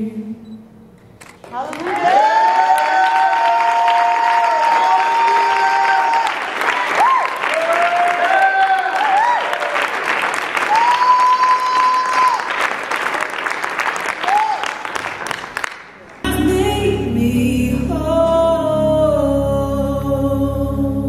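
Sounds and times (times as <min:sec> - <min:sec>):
audience applauding: 0:01.4 - 0:16.3
cheers and whoops: 0:01.8 - 0:09.9, 0:10.6 - 0:12.6, 0:14.2 - 0:14.8.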